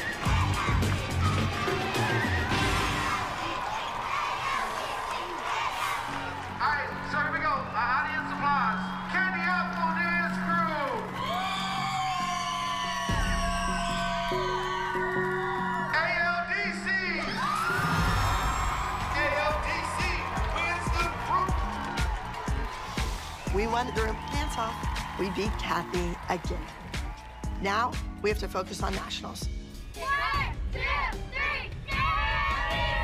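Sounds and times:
upbeat dance music: 0:00.0 - 0:03.8, 0:18.1 - 0:30.9
crowd whooping and cheering: 0:00.0 - 0:28.2, 0:29.9 - 0:33.0.

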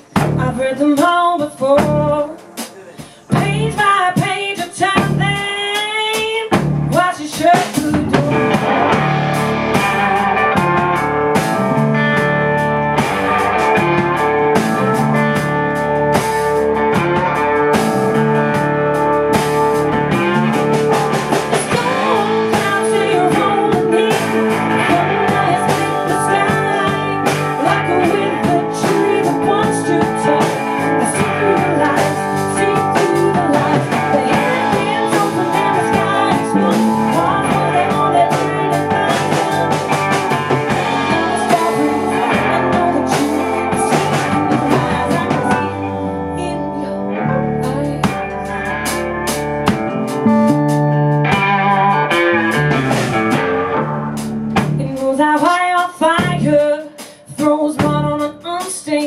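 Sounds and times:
woman singing: 0:00.0 - 0:09.1, 0:21.3 - 0:49.0, 0:54.8 - 0:59.0
bass guitar: 0:00.0 - 0:59.0
drum kit: 0:00.0 - 0:59.0
electric guitar: 0:00.0 - 0:59.0.

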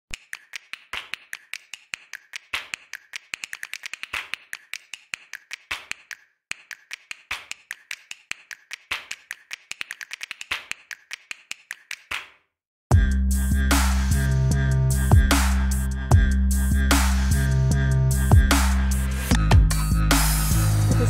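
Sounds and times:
rapid sharp clicks: 0:00.1 - 0:12.3.

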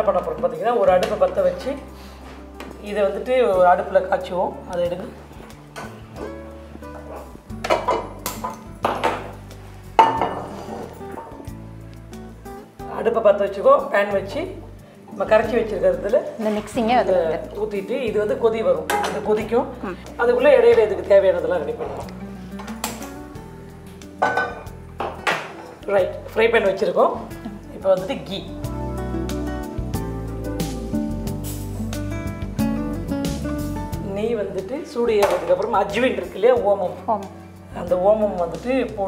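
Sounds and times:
background music: 0:00.0 - 0:39.0
metal cookware clinking: 0:10.0 - 0:11.4, 0:18.9 - 0:19.4, 0:24.2 - 0:25.7.

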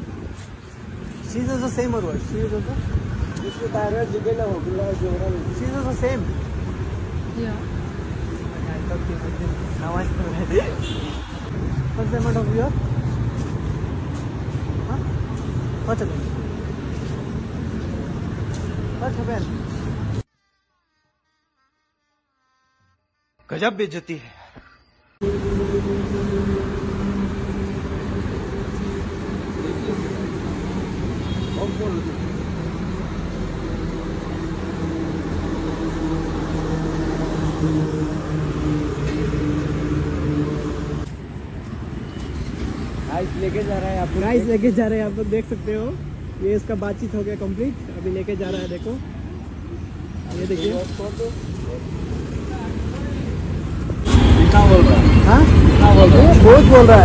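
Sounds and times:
street traffic rumble: 0:00.0 - 0:20.3, 0:25.2 - 0:57.0
truck passing: 0:25.2 - 0:48.0, 0:49.4 - 0:57.0.

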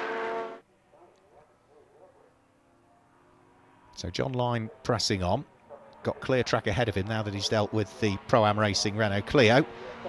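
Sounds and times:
distant race car engines: 0:00.0 - 0:10.0
race car engine at high revs: 0:05.6 - 0:10.0.

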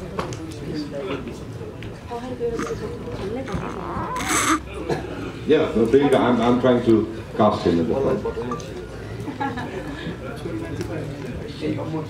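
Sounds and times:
people talking: 0:00.0 - 0:06.9.

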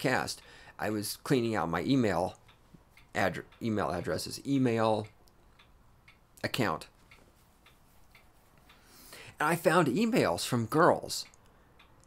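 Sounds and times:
faint regular ticking: 0:00.0 - 0:12.0.

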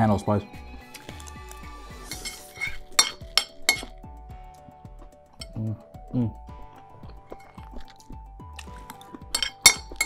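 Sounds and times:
fork clinking against ceramic plate: 0:02.1 - 0:03.9, 0:09.3 - 0:10.0.

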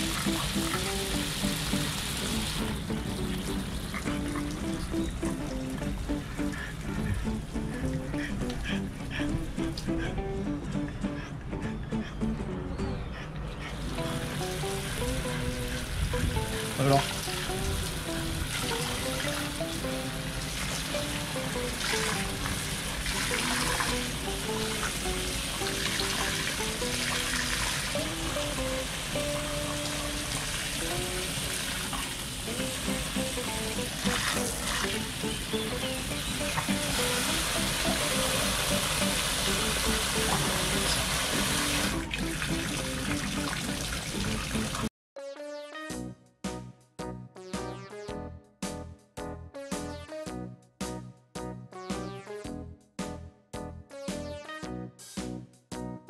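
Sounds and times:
hose water splashing into pond: 0:00.0 - 0:10.0, 0:13.8 - 0:44.9
background music: 0:00.0 - 0:56.0.

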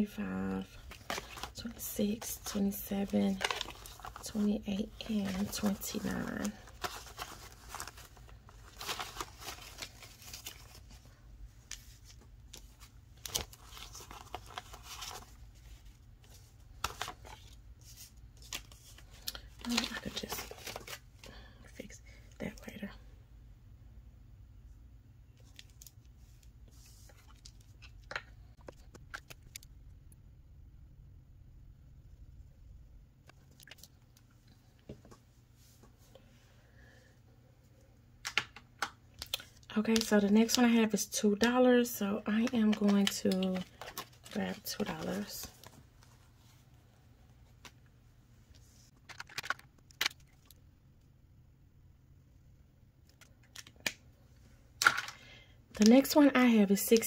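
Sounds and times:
soft rustle: 0:00.6 - 0:21.3, 0:25.4 - 0:27.9, 0:33.8 - 0:36.4.

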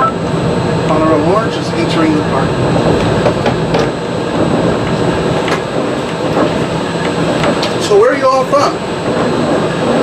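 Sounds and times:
monorail rumbling on its beam: 0:00.0 - 0:10.0.

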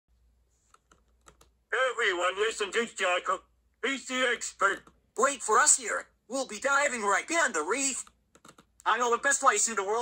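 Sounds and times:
recorded voice from sound book: 0:00.2 - 0:10.0.

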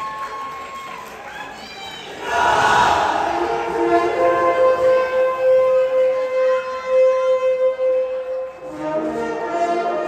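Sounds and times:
wind instrument holding one note: 0:02.9 - 0:10.0.

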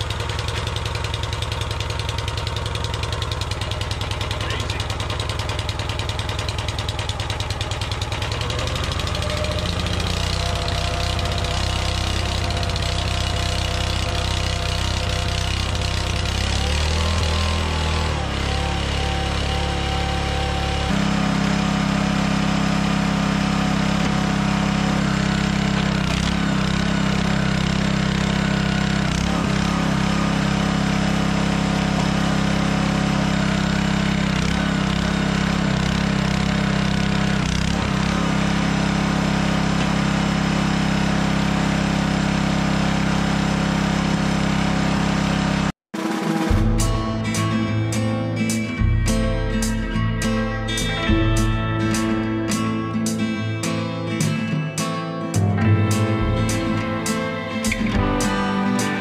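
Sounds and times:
small gas engine running: 0:00.0 - 0:47.6, 0:55.3 - 0:59.0.

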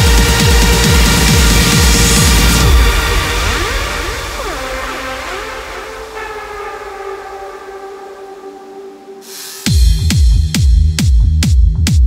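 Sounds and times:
sustained synthesizer note: 0:00.0 - 0:09.2.

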